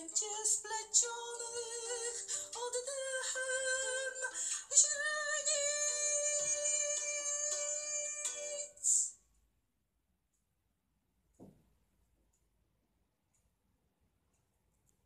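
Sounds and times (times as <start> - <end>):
song with sung vocal: 0.0 - 9.2.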